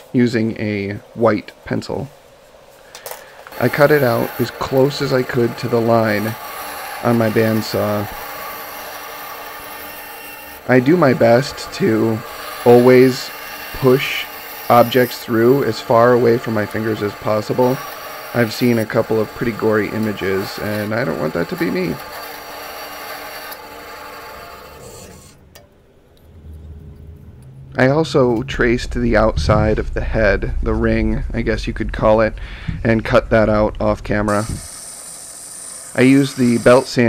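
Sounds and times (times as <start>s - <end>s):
bandsaw cutting wood: 3.5s - 25.4s, 34.3s - 37.0s
faint hum: 24.5s - 35.3s.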